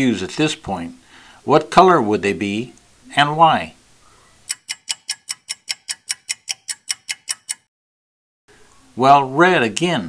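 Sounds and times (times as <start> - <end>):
clock ticking: 4.5 - 7.7.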